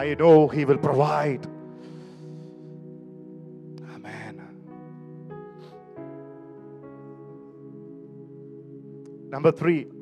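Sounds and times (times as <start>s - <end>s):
sustained keyboard chords: 0.0s - 10.0s
sharp breath into microphone: 1.7s - 2.9s.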